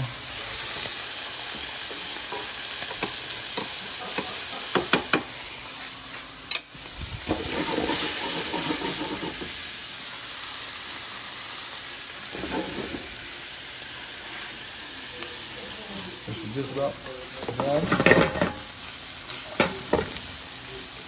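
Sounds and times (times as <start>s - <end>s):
fish sizzling in butter: 0.0s - 21.0s.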